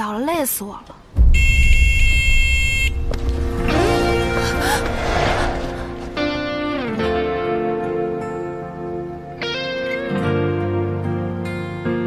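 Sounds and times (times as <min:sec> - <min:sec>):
car horn honking: 0:01.3 - 0:03.1.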